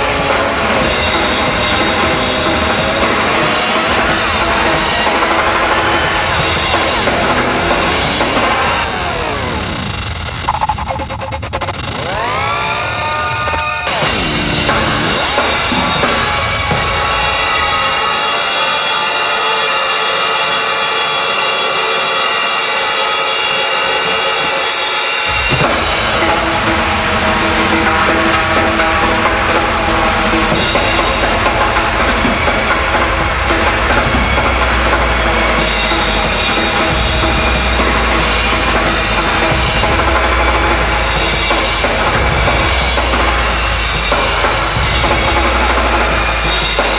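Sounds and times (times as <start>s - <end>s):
rock drum kit played hard: 0.0s - 12.4s, 13.1s - 46.9s
held synth tones: 0.0s - 19.6s
sweeping pitch glides: 0.0s - 22.8s.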